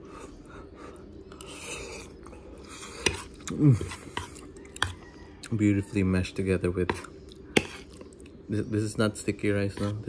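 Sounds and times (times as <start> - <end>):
person chewing wet food: 0.0 - 5.6, 7.0 - 8.5.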